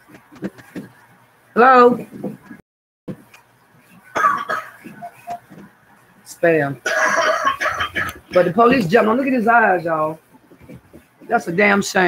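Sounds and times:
person coughing: 4.1 - 4.9, 6.8 - 8.5.

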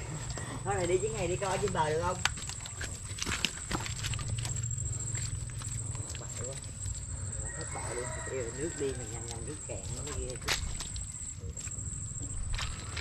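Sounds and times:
footsteps in mud: 0.0 - 13.0.

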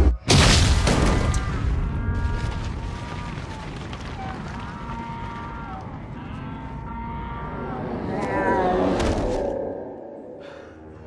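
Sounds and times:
cattle mooing: 4.2 - 9.6.

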